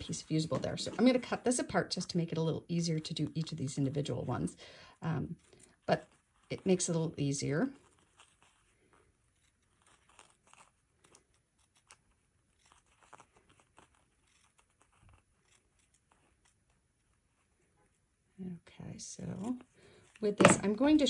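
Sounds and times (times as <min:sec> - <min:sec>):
scissors snipping fabric: 0:09.3 - 0:16.6.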